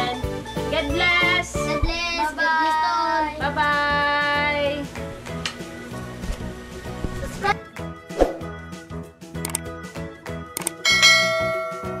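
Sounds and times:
background music: 0:00.0 - 0:12.0
quick clicks: 0:09.4 - 0:09.7, 0:10.6 - 0:10.8
bright bell chime: 0:10.8 - 0:12.0.

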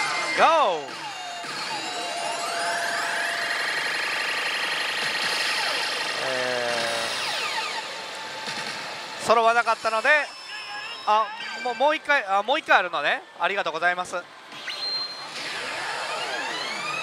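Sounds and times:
electronic falling sweeps: 0:14.5 - 0:17.0.

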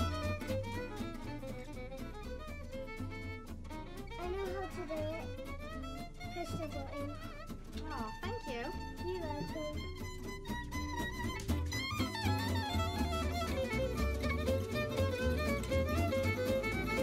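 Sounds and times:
violin music over low bass: 0:00.0 - 0:17.0.

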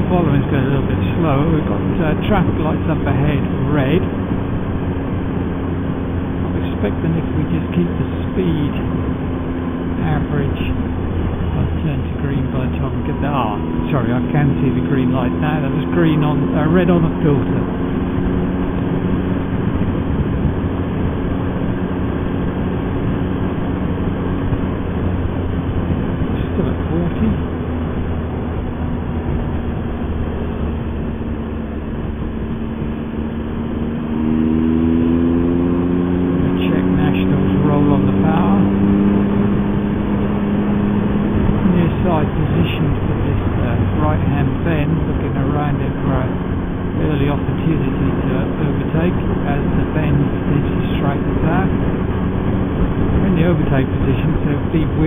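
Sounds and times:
motorcycle engine running: 0:00.0 - 0:55.0
wind and road noise: 0:00.0 - 0:55.0.

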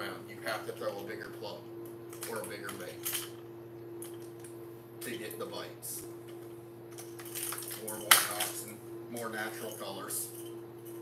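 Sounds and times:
steady hum: 0:00.0 - 0:11.0.

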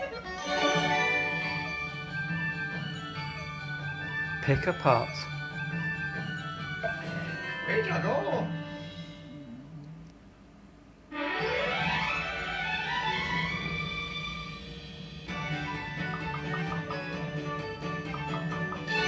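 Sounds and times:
jingly slot machine tune: 0:00.0 - 0:09.1, 0:11.2 - 0:14.0, 0:15.3 - 0:19.0
low hum: 0:08.6 - 0:11.1.

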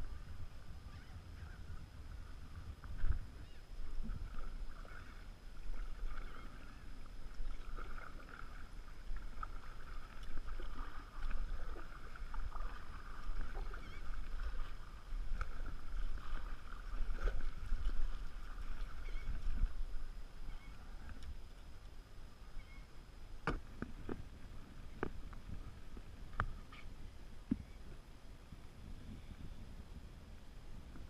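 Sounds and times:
steady low rumble: 0:00.0 - 0:31.0
kayak paddle splashing in water: 0:03.8 - 0:21.2.

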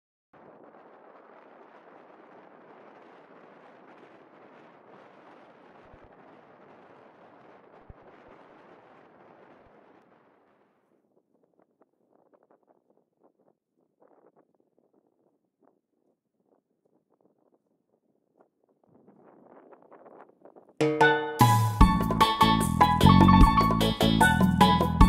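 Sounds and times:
faint steady wind: 0:00.4 - 0:20.8
wind buffeting microphone: 0:00.4 - 0:20.8.

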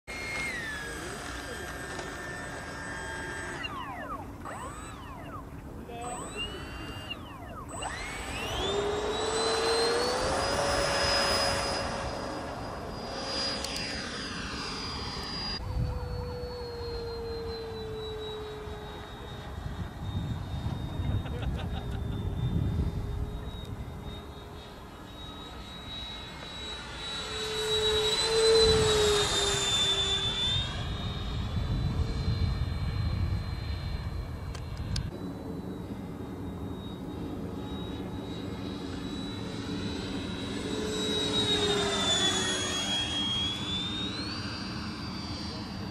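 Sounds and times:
electric ducted fan whining: 0:00.1 - 0:45.9.

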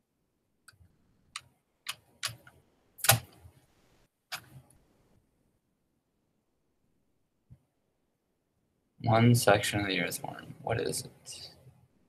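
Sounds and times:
sharp clicks: 0:00.6 - 0:03.4.

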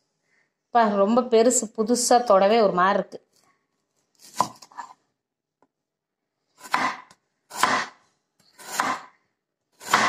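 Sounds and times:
cleaver chopping onion on board: 0:06.6 - 0:08.0, 0:08.6 - 0:09.1, 0:09.8 - 0:10.0.

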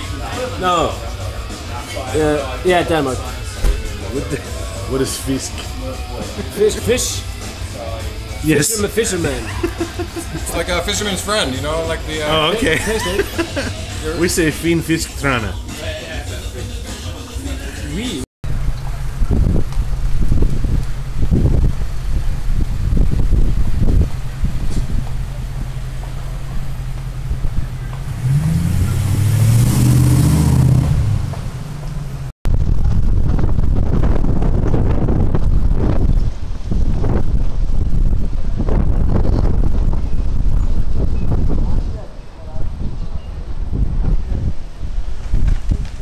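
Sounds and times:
wind buffeting microphone: 0:18.4 - 0:29.9, 0:32.4 - 0:46.0
car driving past: 0:24.6 - 0:32.3.

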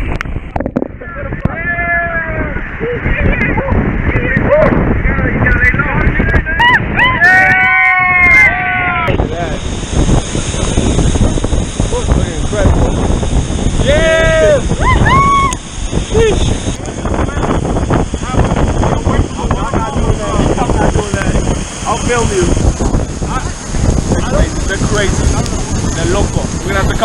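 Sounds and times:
waterfall rushing: 0:01.2 - 0:27.0
people whooping and shouting: 0:01.5 - 0:03.6, 0:06.4 - 0:09.2, 0:13.8 - 0:16.4
water spray hitting camera: 0:09.1 - 0:27.0.

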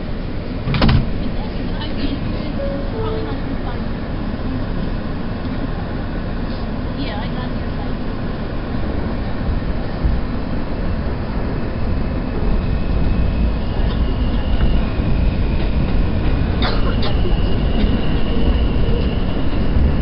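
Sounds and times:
subway train rumbling: 0:00.0 - 0:20.0
high steady whine: 0:02.3 - 0:20.0.

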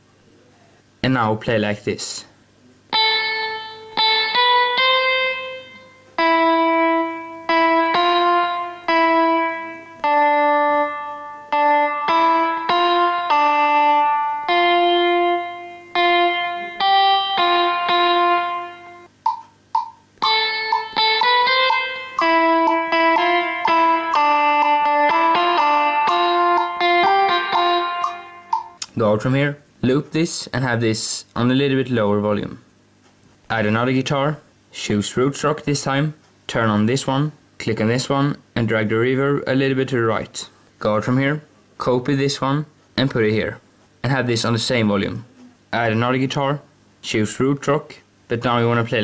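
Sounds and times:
clean electric guitar notes: 0:02.9 - 0:19.2, 0:20.2 - 0:29.0.

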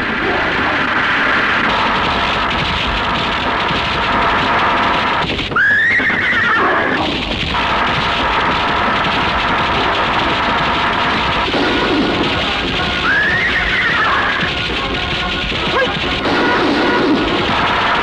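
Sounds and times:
soundtrack music: 0:00.0 - 0:18.0
galloping: 0:01.7 - 0:18.0
horse whinnying: 0:05.6 - 0:07.0, 0:13.1 - 0:14.5.

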